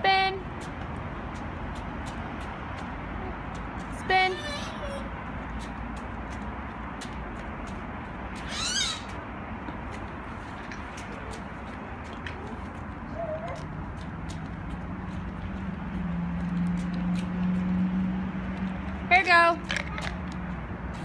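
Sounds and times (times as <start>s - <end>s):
children squealing: 8.4s - 9.2s.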